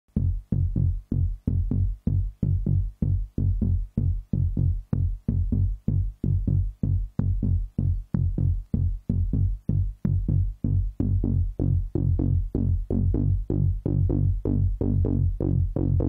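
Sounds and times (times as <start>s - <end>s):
synthesizer bass pulses: 0.1s - 16.0s.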